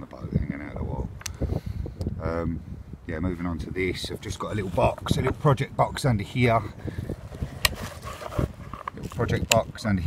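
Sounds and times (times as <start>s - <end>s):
gloved hand rustling: 6.7s - 9.6s.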